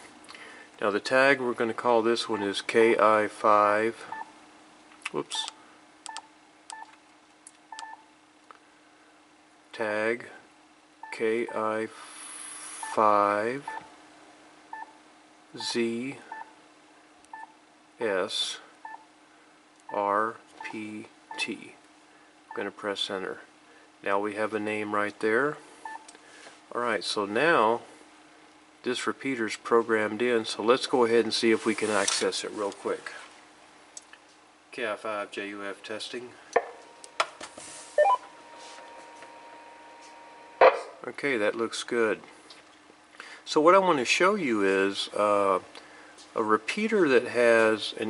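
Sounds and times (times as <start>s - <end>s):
faint steady whine: 0.0s - 48.0s
short electronic beeps: 38.0s - 38.3s.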